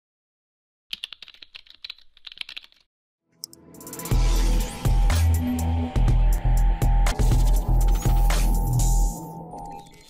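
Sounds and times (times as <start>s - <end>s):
computer keyboard typing: 0.9s - 2.9s.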